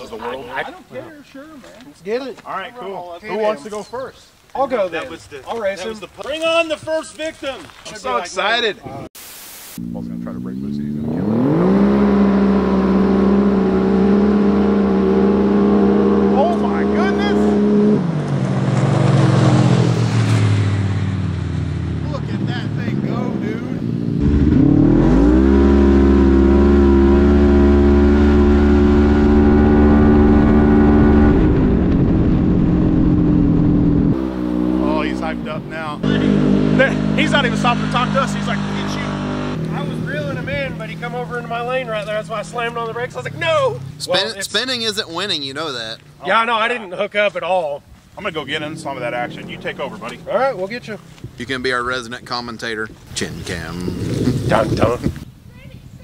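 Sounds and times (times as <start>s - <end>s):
voices: 0.0s - 9.1s, 9.8s - 12.1s, 16.1s - 18.0s, 22.0s - 24.0s, 34.7s - 56.0s
engine revving at full throttle: 9.8s - 41.6s, 48.5s - 50.8s.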